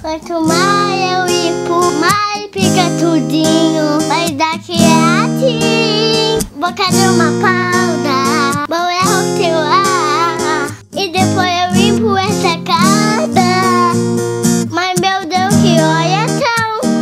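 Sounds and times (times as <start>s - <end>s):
acoustic guitar backing track: 0.0s - 17.0s
girl singing: 0.0s - 17.0s.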